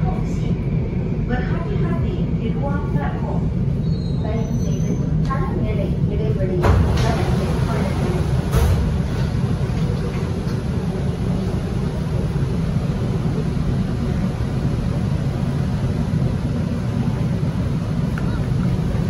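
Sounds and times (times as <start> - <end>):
train equipment and ventilation hum: 0.0 - 19.0.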